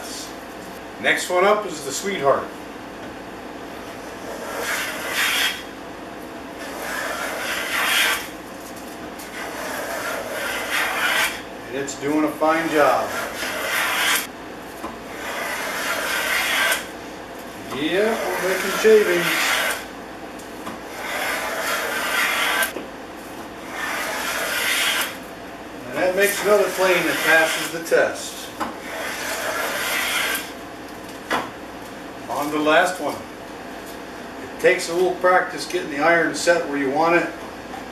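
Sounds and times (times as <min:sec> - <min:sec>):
hand plane cutting wood: 0:04.2 - 0:05.6, 0:06.6 - 0:08.3, 0:09.3 - 0:11.4, 0:12.5 - 0:14.3, 0:15.1 - 0:16.9, 0:18.0 - 0:19.8, 0:20.9 - 0:22.8, 0:23.6 - 0:25.2, 0:26.1 - 0:27.8, 0:28.8 - 0:30.5.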